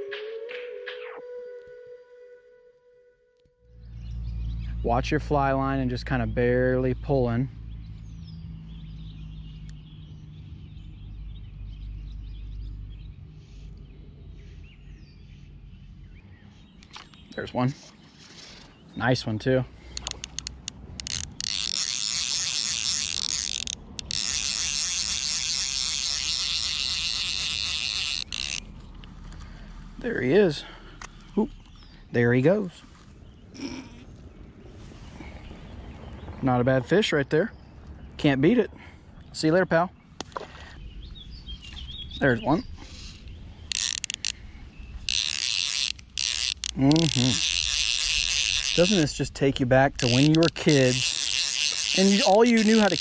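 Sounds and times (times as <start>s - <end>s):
fishing reel ratchet buzzing: 19.8s - 28.7s, 43.6s - 53.0s
reel single clicks: 19.9s - 29.1s, 43.7s - 44.4s, 45.0s - 49.1s, 50.0s - 53.0s.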